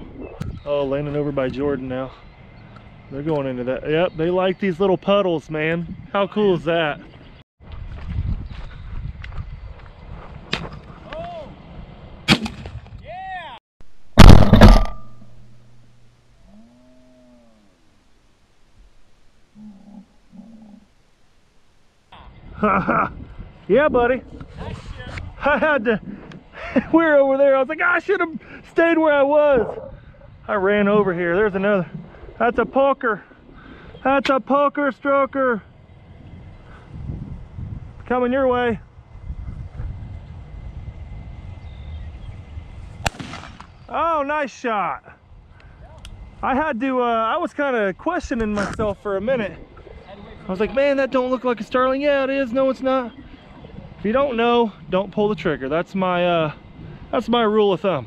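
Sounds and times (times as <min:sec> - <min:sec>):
wind rumble on microphone: 0:00.0 - 0:04.4, 0:05.0 - 0:06.4, 0:07.2 - 0:13.2, 0:22.2 - 0:26.8, 0:29.3 - 0:34.1, 0:35.6 - 0:43.9, 0:48.0 - 0:50.8, 0:51.6 - 0:58.0
shotgun blast: 0:12.3 - 0:12.7, 0:14.2 - 0:15.8, 0:43.0 - 0:43.7.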